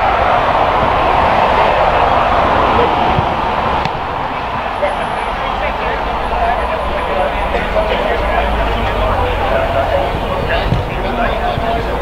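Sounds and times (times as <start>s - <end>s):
outdoor rumble: 0.0s - 12.0s.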